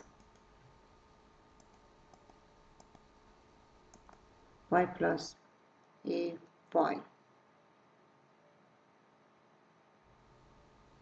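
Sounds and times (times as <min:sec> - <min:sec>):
computer mouse clicks: 0:00.0 - 0:00.5, 0:01.6 - 0:03.1, 0:03.9 - 0:04.3.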